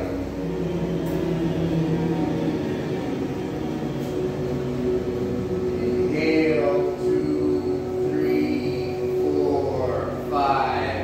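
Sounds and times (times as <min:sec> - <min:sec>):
voices humming together: 0:00.0 - 0:11.0.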